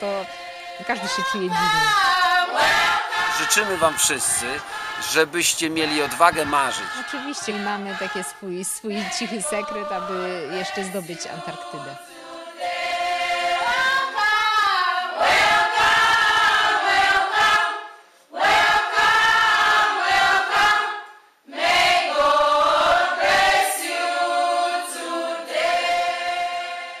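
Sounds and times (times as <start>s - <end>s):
choir singing slow piece: 0.0s - 27.0s.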